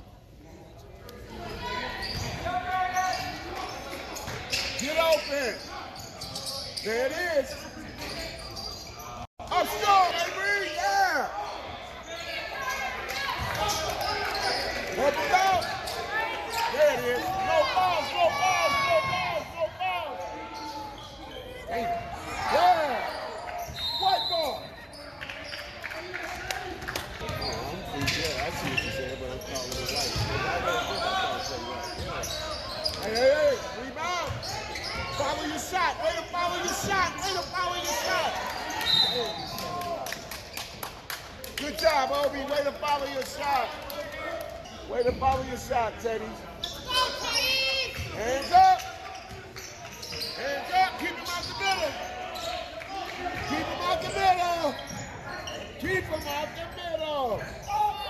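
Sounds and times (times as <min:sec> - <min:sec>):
sneaker squeaks: 0:00.8 - 0:09.3, 0:11.5 - 0:25.8, 0:27.2 - 0:39.8, 0:44.6 - 0:58.0.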